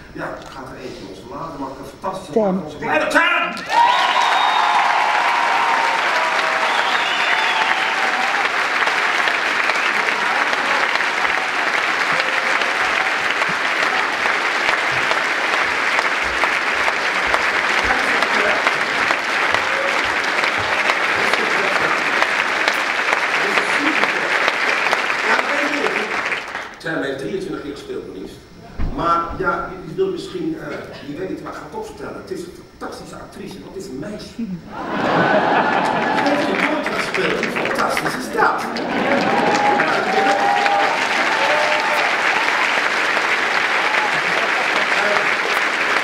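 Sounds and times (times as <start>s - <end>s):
audience applause: 3.5s - 26.8s, 34.7s - 46.0s.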